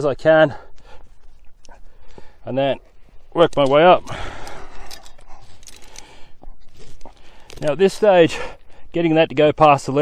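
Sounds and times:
climbing gear clicking: 0.6s - 8.8s.

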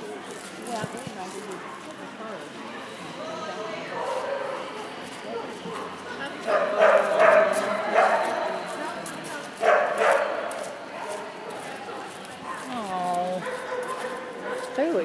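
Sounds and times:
people talking: 0.0s - 13.5s, 14.5s - 15.0s
dog barking: 4.0s - 8.5s, 9.6s - 12.8s, 13.4s - 15.0s.

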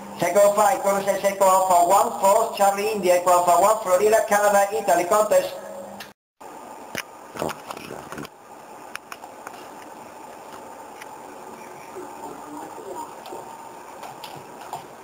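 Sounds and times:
steady hiss: 4.9s - 15.0s
faint voice from radio: 11.4s - 13.6s.

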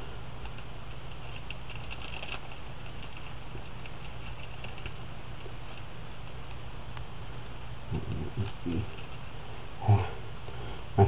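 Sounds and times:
low electrical hum: 0.0s - 11.0s
plastic strip crinkling: 0.4s - 5.0s.

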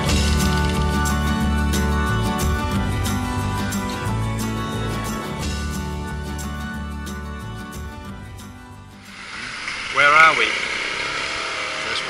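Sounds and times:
outdoor street noise: 0.0s - 12.0s.

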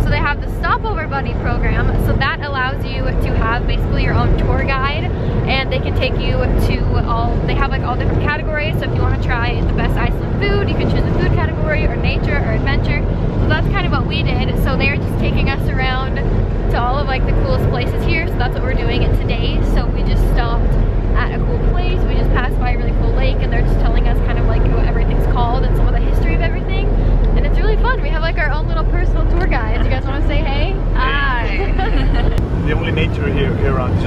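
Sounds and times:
van driving rumble from cabin: 0.0s - 34.0s.

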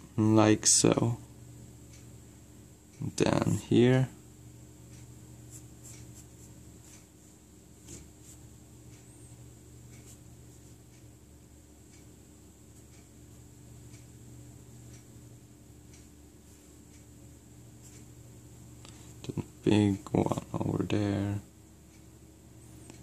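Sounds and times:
steady low hum: 0.0s - 23.0s.

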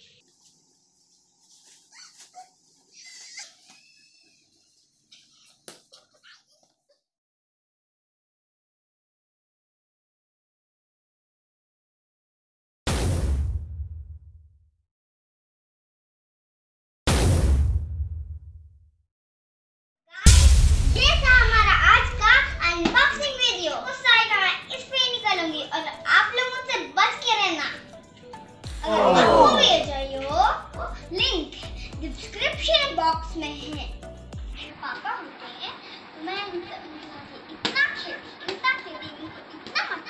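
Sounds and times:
girl speaking: 21.0s - 27.8s, 28.8s - 34.0s, 34.6s - 40.0s.

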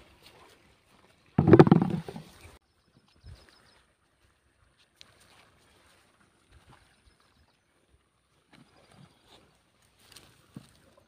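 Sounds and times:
tomatoes dropped into plastic basin: 1.4s - 2.2s.

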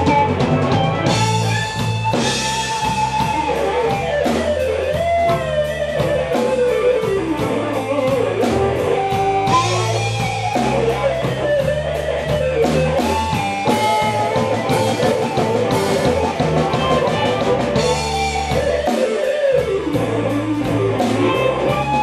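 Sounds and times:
bass: 0.0s - 22.0s
electric guitar solo: 0.0s - 22.0s
steady drum beat: 0.0s - 22.0s.

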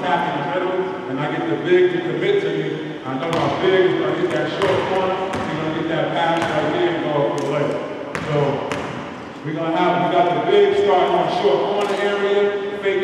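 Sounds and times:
man talking: 0.0s - 8.8s, 9.4s - 13.0s
basketball bouncing on hardwood: 4.3s - 5.6s, 8.1s - 9.0s.

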